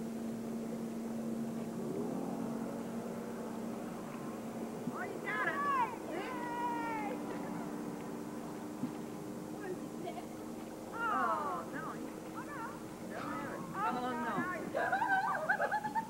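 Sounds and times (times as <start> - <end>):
distant motorboat engine droning: 0.0 - 16.0
high falling cries: 5.2 - 7.2.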